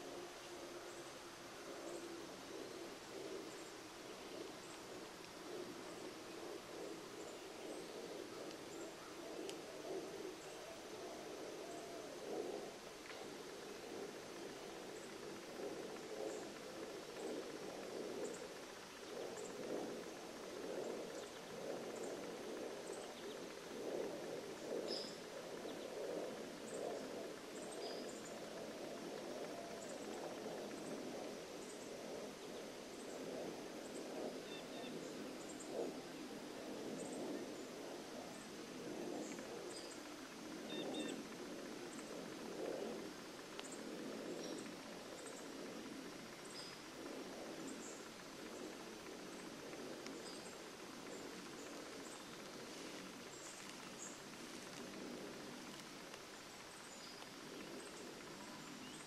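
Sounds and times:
low uneven noise: 0.0 - 59.0.

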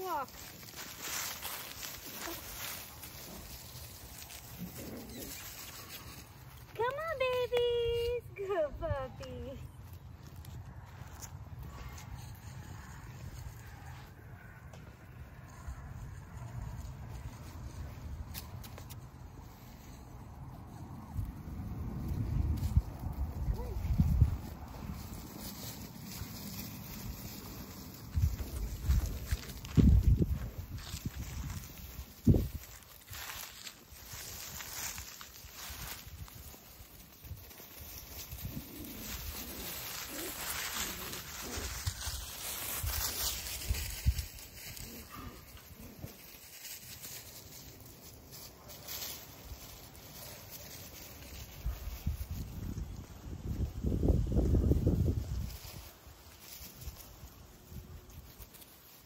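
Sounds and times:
footsteps in dry leaves: 0.0 - 59.0.

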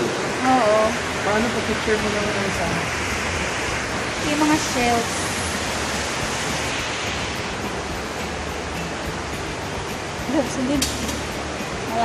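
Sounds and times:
water rushing in a cave: 0.0 - 12.0.

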